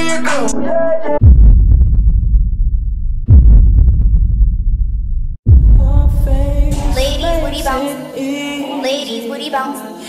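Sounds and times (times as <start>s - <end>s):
deep bass booms: 1.2s - 7.8s.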